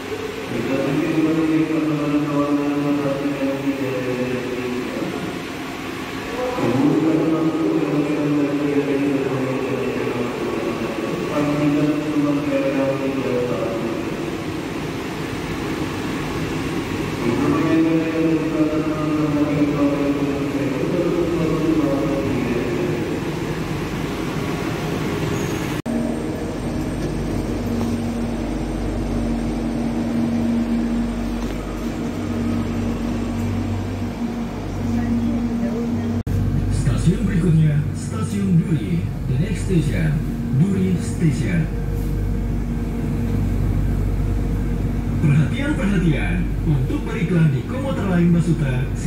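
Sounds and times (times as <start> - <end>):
electric train pulling in: 0.0 - 49.0
train low rumble with hum: 0.0 - 49.0.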